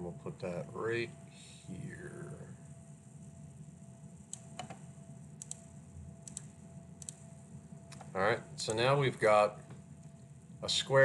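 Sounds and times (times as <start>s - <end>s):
faint low hum: 0.0s - 11.0s
computer mouse clicking: 4.3s - 4.8s, 5.4s - 7.3s.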